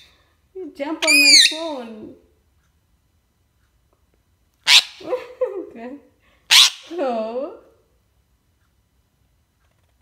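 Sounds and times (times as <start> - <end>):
parakeet squawk: 1.0 - 1.7, 4.6 - 5.1, 6.5 - 7.0.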